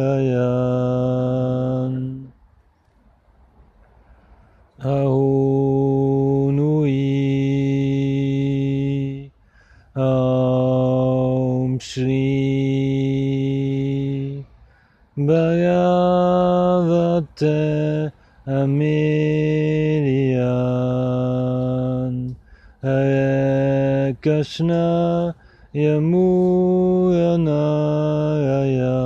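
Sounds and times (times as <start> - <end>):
man chanting in held notes: 0.0 - 2.3, 4.8 - 14.6.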